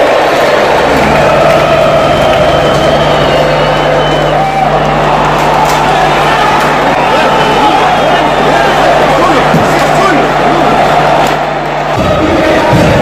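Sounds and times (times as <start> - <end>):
football crowd singing and chanting: 0.0 - 13.0.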